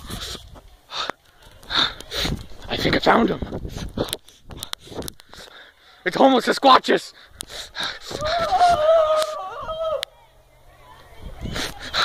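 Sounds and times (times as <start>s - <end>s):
person gasping breaths: 0.0s - 2.4s, 7.1s - 8.5s.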